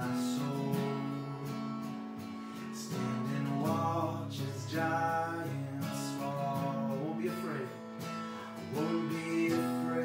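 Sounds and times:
man singing worship song: 0.0s - 1.6s, 2.7s - 7.8s, 8.6s - 10.0s
acoustic guitar strummed slowly: 0.0s - 10.0s.

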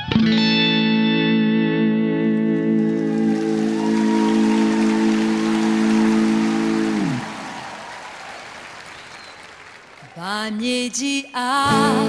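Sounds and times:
audience applause: 2.8s - 10.4s.

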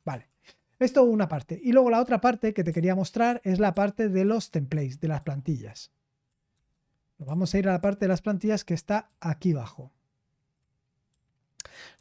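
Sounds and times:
person speaking: 0.0s - 6.0s, 7.2s - 10.0s
short breath: 11.6s - 12.0s.

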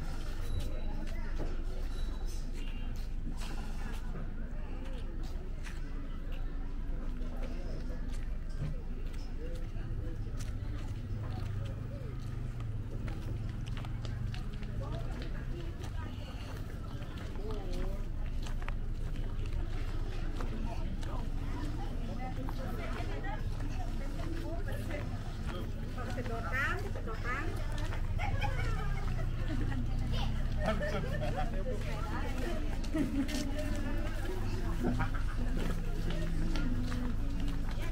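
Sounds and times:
distant voices chattering: 0.0s - 37.9s
footsteps: 10.3s - 37.9s.

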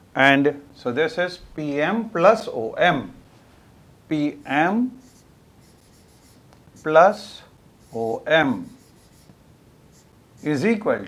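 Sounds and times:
marker pen writing on whiteboard: 4.3s - 10.8s.

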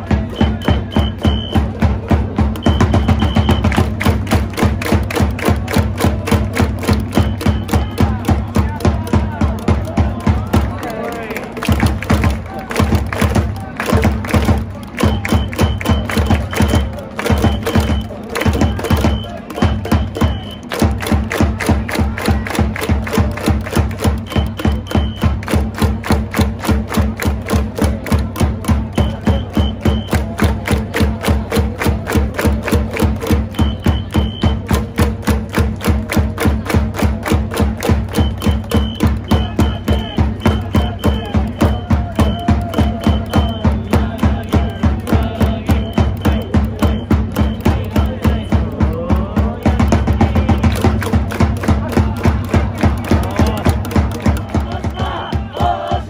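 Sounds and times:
drums beating fast rhythm: 0.0s - 56.0s
whistle blasts: 0.3s - 1.8s, 2.6s - 3.8s, 7.1s - 8.1s, 15.0s - 20.8s, 24.0s - 25.5s, 28.9s - 30.3s, 33.5s - 34.8s, 38.1s - 44.8s, 45.6s - 47.9s, 54.7s - 56.0s
fans chanting: 27.0s - 56.0s.

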